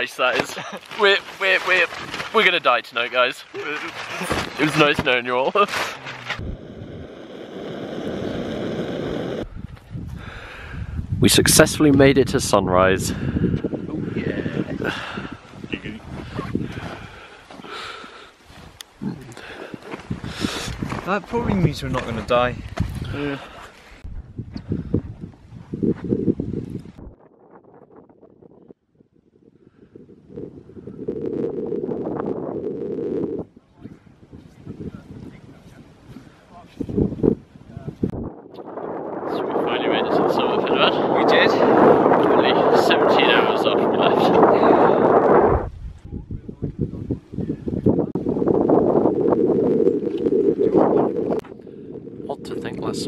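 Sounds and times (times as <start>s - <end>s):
wind buffeting microphone: 0.9s - 53.0s.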